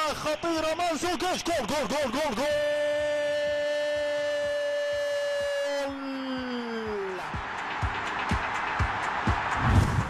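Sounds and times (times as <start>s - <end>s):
commentator shouting goal: 0.0s - 7.3s.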